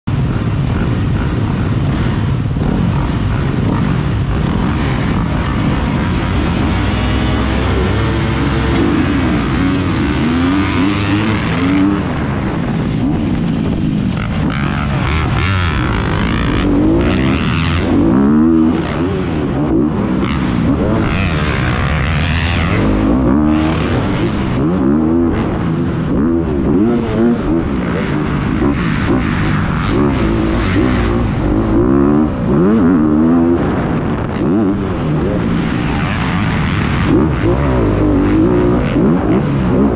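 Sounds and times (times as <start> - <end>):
dirt bike engine revving: 0.1 - 39.9.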